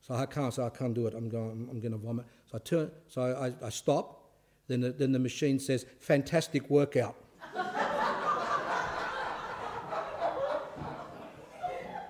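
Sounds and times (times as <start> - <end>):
people laughing: 7.4 - 12.0.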